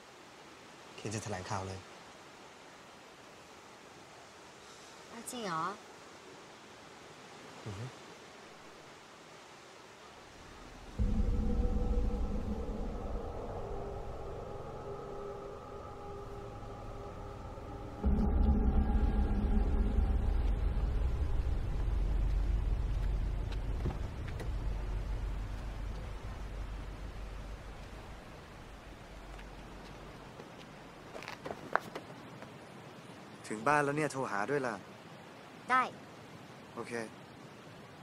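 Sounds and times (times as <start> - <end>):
ominous droning film score: 10.4 - 30.2.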